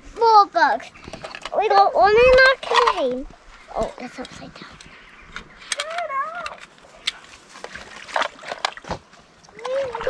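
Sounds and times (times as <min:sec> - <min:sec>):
plastic container clicks and rustling: 0:01.1 - 0:03.2
child's wavering vocal sound: 0:09.5 - 0:10.0.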